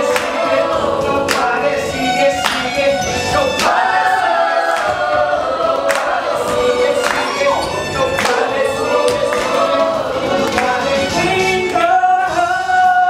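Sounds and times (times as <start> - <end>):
group of voices singing: 0.0 - 13.0
musical accompaniment with steady beat: 0.0 - 13.0.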